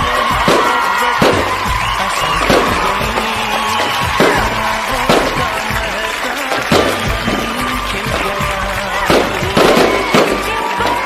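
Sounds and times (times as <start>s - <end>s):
film song: 0.0s - 11.0s
sparkler fizzing and crackling: 0.0s - 11.0s.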